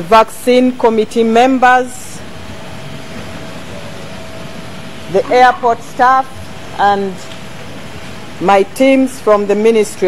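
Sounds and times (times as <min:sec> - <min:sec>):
machine hum and hiss: 0:00.0 - 0:10.0.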